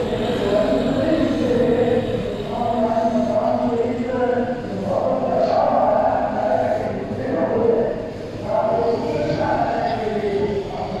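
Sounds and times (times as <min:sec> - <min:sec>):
man chanting religious recitation: 0:00.0 - 0:11.0.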